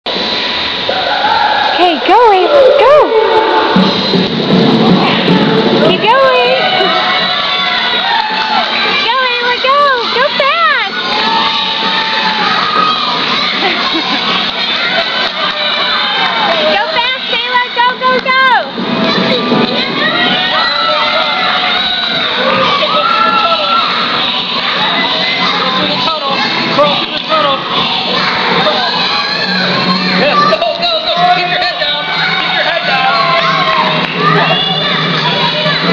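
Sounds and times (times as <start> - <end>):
children shouting and cheering: 0.9 - 35.9.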